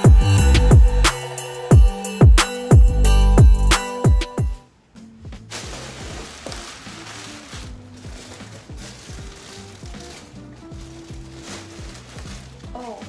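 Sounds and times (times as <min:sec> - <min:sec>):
quiet background music: 0:00.0 - 0:13.0
plastic bags crinkling: 0:05.4 - 0:13.0.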